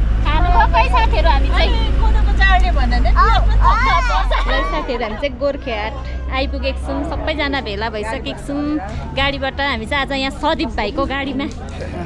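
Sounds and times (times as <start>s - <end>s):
vehicle engine and tyres rumbling: 0.0s - 12.0s
people talking: 0.2s - 12.0s.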